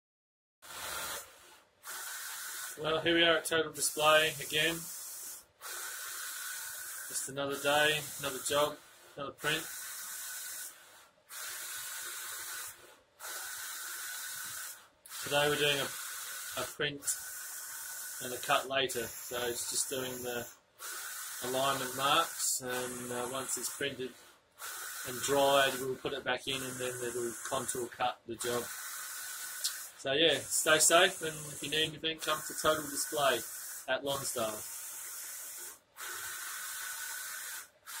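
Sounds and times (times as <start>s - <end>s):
printer whirring hiss with whine: 0.7s - 38.0s.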